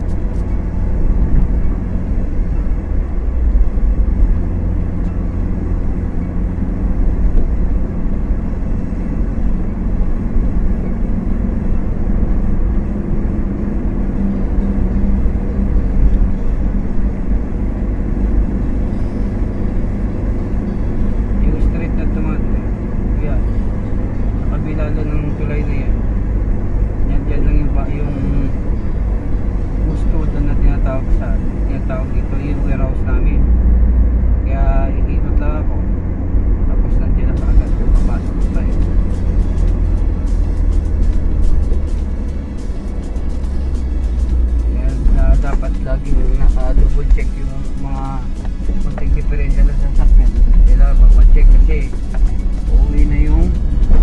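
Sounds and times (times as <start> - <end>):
road and engine rumble in car: 0.0 - 54.0.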